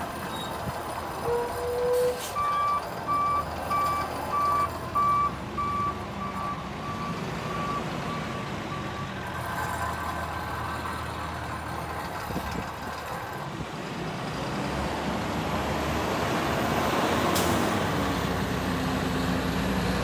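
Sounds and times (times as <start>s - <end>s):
diesel engine running: 0.0s - 20.0s
truck backup alarm beeping: 1.2s - 9.9s.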